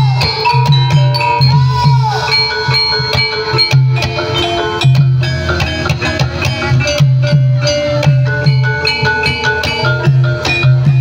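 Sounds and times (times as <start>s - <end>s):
steady drum beat: 0.0s - 11.0s
struck metallophone notes: 0.0s - 11.0s.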